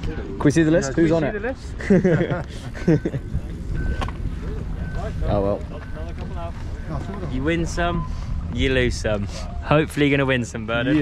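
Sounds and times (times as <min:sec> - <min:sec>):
voices: 0:00.0 - 0:11.0
low wind rumble: 0:01.6 - 0:11.0
timing clock beeping: 0:02.8 - 0:08.2.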